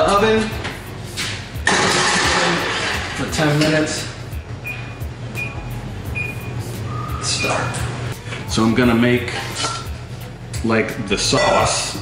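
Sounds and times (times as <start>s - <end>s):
oven keypad beeps: 4.4s - 6.6s.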